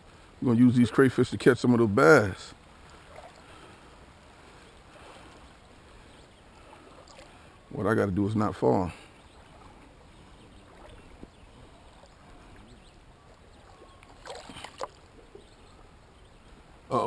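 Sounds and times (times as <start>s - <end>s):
creek water flowing: 0.0s - 17.0s
water sloshing from wading: 2.6s - 16.9s.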